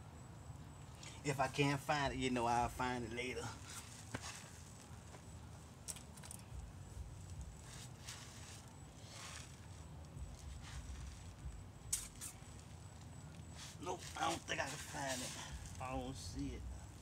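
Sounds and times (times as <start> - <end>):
soft rustles: 3.5 - 17.0.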